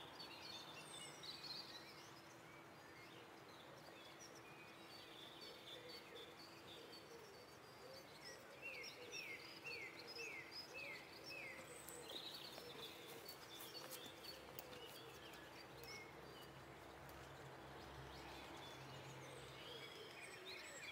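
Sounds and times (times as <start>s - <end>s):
small birds chirping: 0.0s - 20.9s.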